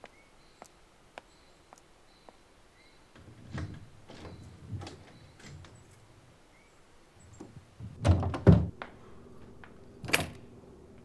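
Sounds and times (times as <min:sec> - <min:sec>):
door shutting heavy thuds: 0:03.1 - 0:05.8, 0:07.4 - 0:08.8.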